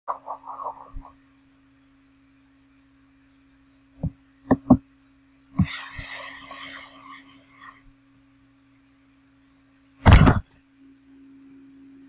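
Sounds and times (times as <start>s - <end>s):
cloth rubbing handling noise: 0.1s - 1.2s
steady low hum: 0.1s - 12.0s.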